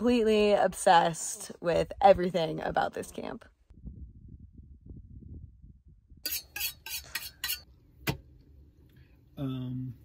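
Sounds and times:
metal knife and utensils clinking: 0:06.2 - 0:07.7.

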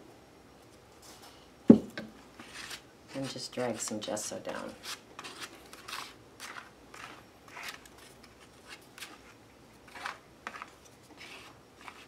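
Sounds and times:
plastic card scraping paper: 0:04.8 - 0:12.0.

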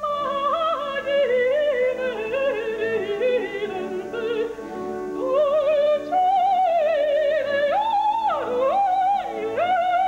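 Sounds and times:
operatic woman singing: 0:00.0 - 0:10.0
soft accompaniment: 0:00.0 - 0:10.0.

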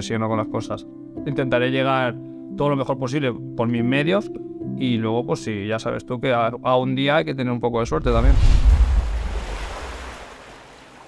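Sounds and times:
low wind-like rumble with hiss: 0:07.8 - 0:09.9.

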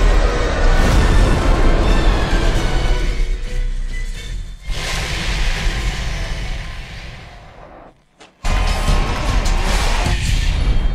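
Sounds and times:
trailer music: 0:00.0 - 0:10.9.

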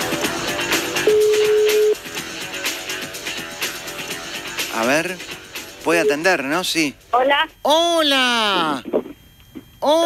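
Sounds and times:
background music with a beat: 0:00.0 - 0:07.0
telephone ringback tone: 0:01.0 - 0:02.0, 0:05.9 - 0:06.6.

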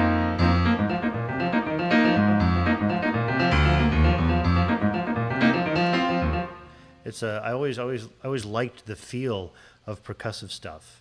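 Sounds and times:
keyboard percussive chords: 0:00.0 - 0:06.7.

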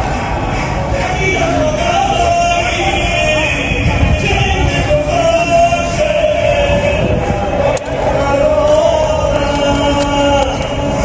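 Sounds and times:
group singing a chant: 0:00.8 - 0:11.0.

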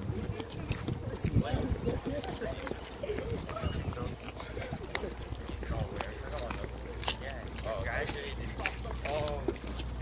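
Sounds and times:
footsteps on concrete: 0:00.0 - 0:10.0
low indistinct talking: 0:00.0 - 0:10.0.

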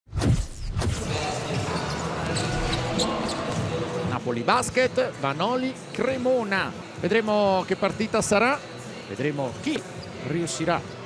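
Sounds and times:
indoor crowd murmur: 0:01.0 - 0:11.0.

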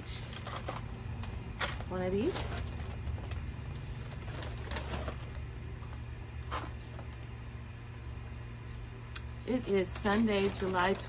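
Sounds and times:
plastic bag rustling: 0:00.0 - 0:07.7, 0:09.5 - 0:11.0
steady low hum: 0:00.0 - 0:11.0.

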